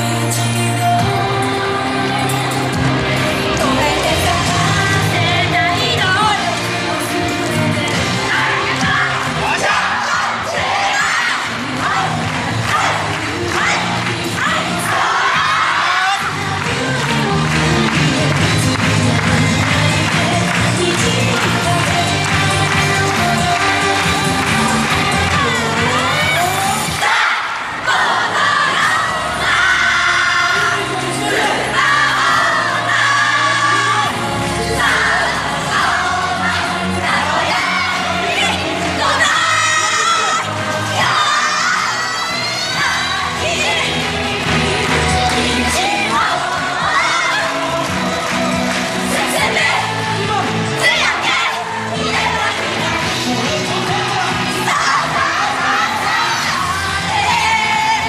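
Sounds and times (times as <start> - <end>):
person singing: 0.0 - 9.6, 11.6 - 27.0, 29.1 - 58.0
loud dance music: 0.0 - 58.0
crowd cheering: 2.1 - 58.0
group shouts: 8.8 - 16.2.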